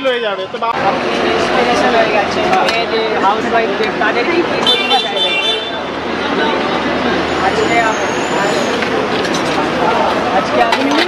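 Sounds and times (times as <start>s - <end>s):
people talking: 0.0s - 11.0s
traffic noise: 0.0s - 11.0s.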